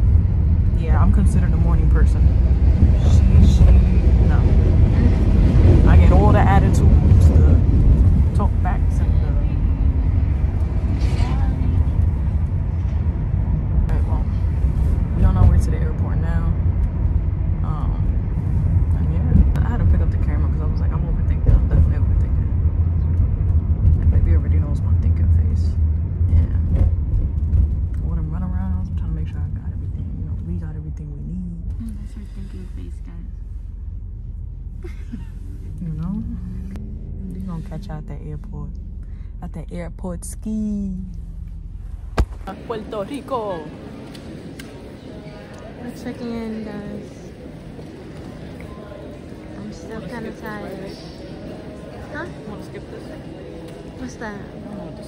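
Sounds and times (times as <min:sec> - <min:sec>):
car road and engine rumble: 0:00.0 - 0:55.0.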